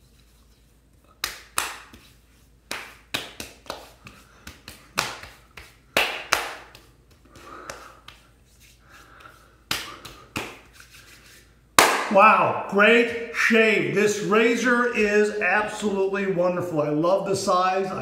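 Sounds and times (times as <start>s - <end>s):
hands slapping a face: 1.2s - 12.2s.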